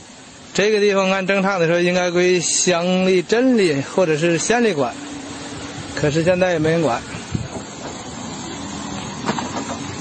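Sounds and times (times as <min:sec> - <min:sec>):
outdoor background noise: 0:00.0 - 0:10.0
vehicle engine humming: 0:00.0 - 0:10.0.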